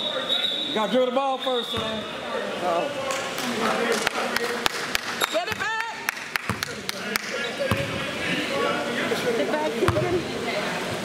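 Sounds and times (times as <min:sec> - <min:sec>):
sneaker squeaks: 0:01.4 - 0:02.1
basketballs bouncing on wood floor: 0:05.5 - 0:05.7, 0:06.4 - 0:06.8, 0:09.9 - 0:10.2.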